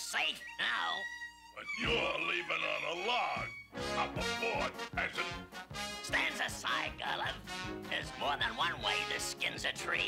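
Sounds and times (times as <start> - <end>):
cartoon music: 0.1 - 10.0.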